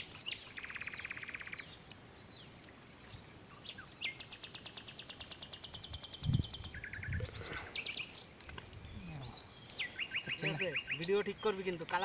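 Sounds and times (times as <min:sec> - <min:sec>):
bird trill: 0:00.0 - 0:08.3, 0:09.2 - 0:12.0
birds chirping and whistling: 0:00.0 - 0:12.0.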